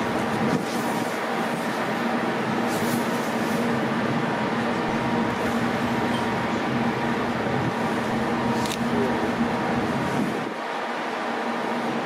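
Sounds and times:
ship machinery and ventilation hum: 0:00.0 - 0:12.0.

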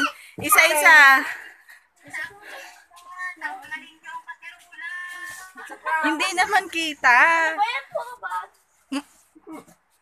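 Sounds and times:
children chattering and calling out: 0:00.0 - 0:06.6, 0:07.4 - 0:09.8.

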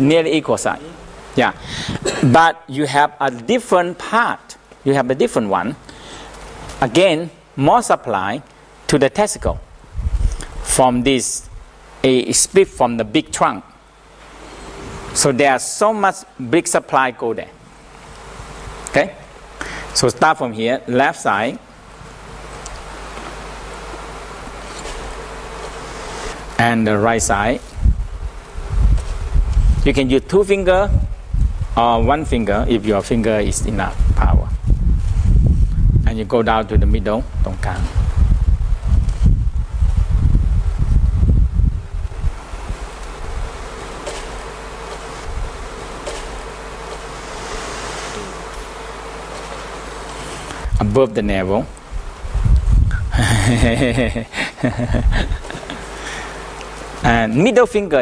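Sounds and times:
faint buzzing hum: 0:00.0 - 0:58.0
steady hiss: 0:00.0 - 0:58.0
low rumbling rubbing noise: 0:24.6 - 0:43.7, 0:47.0 - 0:48.4.

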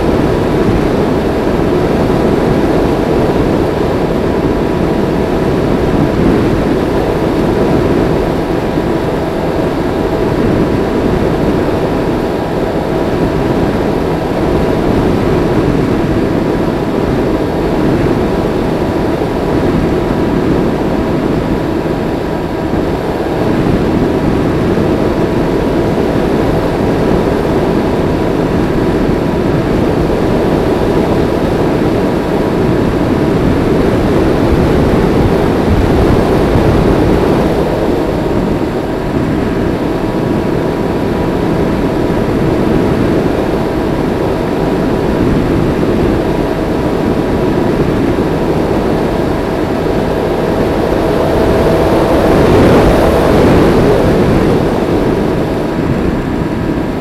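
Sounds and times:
rush of airflow: 0:00.0 - 0:57.0.

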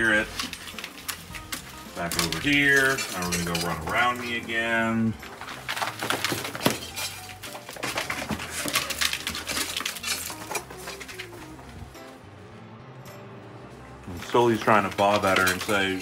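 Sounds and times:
claws scraping over wood: 0:00.0 - 0:04.5.

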